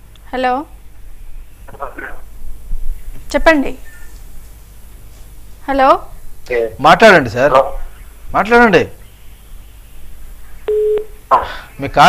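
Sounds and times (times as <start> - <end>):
low line hiss: 0.0 - 12.0
telephone line beep: 10.7 - 11.2.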